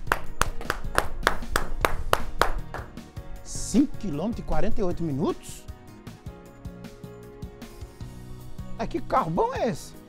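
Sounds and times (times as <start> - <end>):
person clapping hands: 0.0 - 3.1
background music: 0.0 - 10.0.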